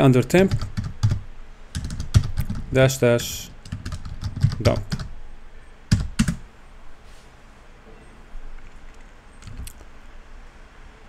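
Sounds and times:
keyboard key clicks: 8.6s - 9.8s.

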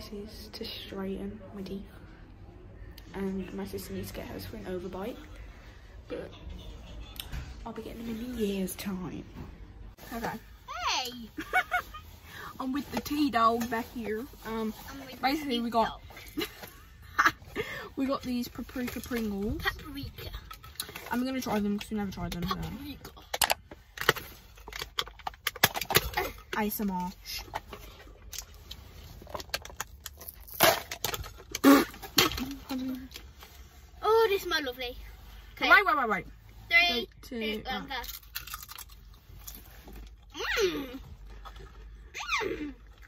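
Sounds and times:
lids and foil seals crackling: 18.2s - 33.4s.

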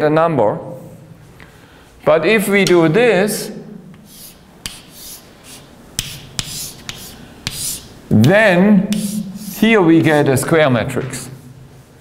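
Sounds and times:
chalk tapping on board: 2.6s - 2.8s, 3.9s - 9.7s
chalk scratching on blackboard: 3.9s - 8.0s, 8.9s - 9.8s.

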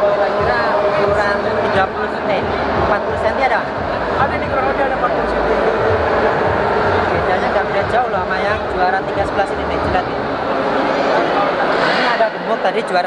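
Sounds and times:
man talking: 0.0s - 6.1s, 7.0s - 10.2s, 11.2s - 13.0s
large hall background noise: 0.0s - 13.0s.

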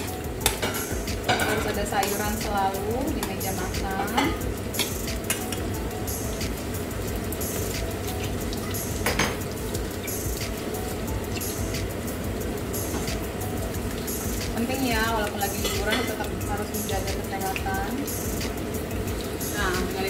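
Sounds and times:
metal utensils clinking on pans: 0.0s - 6.2s, 7.4s - 10.7s, 14.1s - 18.0s
food sizzling: 0.0s - 20.0s.

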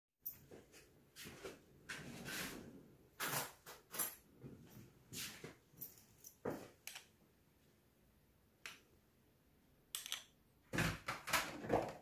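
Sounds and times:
metal spoon clicking on jar: 9.9s - 10.3s.

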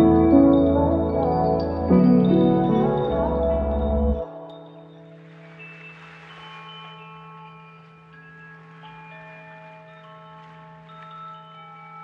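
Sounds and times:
ringing chime-like tones: 0.0s - 12.0s.

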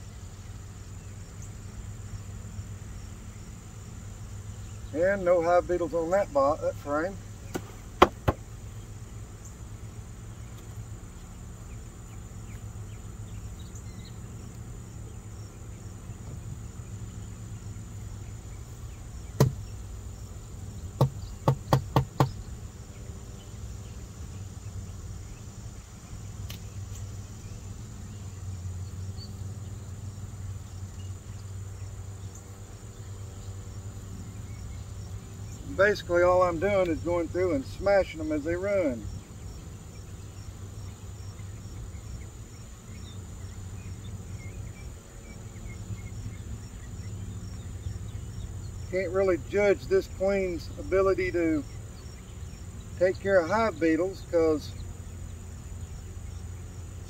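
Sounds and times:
high insect trill: 0.0s - 57.0s
wooden beehive parts knocking: 7.5s - 8.5s, 19.3s - 19.7s, 20.9s - 22.4s.

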